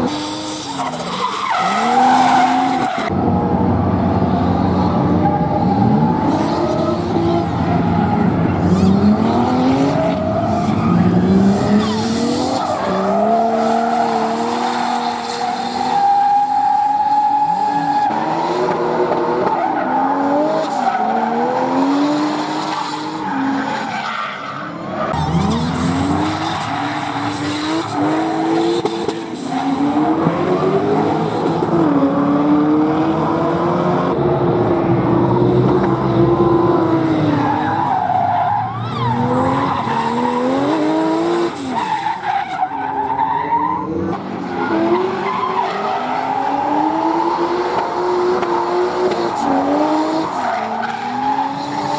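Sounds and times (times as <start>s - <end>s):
tyres squealing and skidding: 0.0s - 3.3s, 4.8s - 31.8s, 36.9s - 51.9s.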